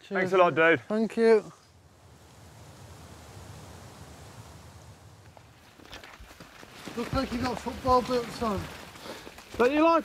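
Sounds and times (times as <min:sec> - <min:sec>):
air moving through trees: 0:00.8 - 0:07.0.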